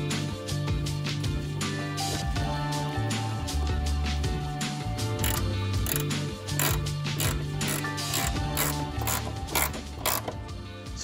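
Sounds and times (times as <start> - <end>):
background music with bass: 0.0 - 11.0
hand ratchet clicking: 5.2 - 10.4.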